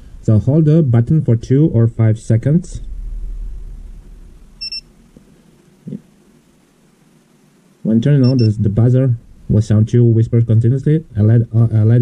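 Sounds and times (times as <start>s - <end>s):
low rumble: 0.0s - 5.2s.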